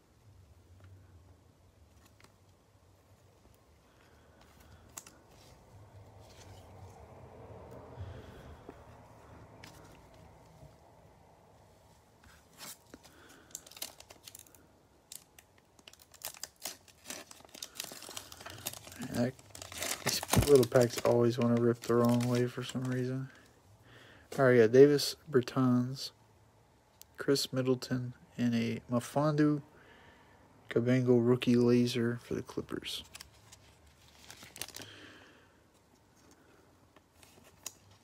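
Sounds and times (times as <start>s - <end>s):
card handled in plastic sleeve: 1.7s - 7.1s, 12.2s - 23.4s, 32.5s - 35.0s, 37.0s - 38.0s
wrapper crinkling and tearing: 12.6s - 23.5s, 33.0s - 35.1s, 37.2s - 38.0s.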